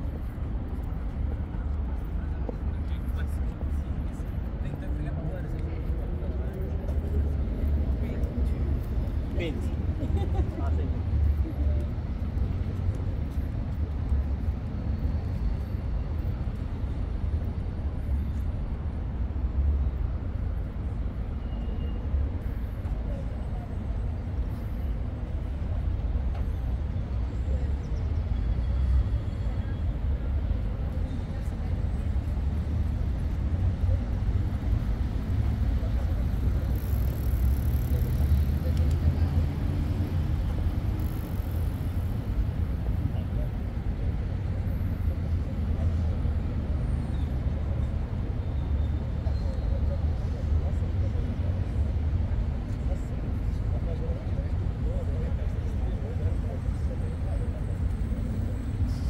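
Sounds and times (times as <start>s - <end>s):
city street traffic rumble: 0.0s - 59.0s.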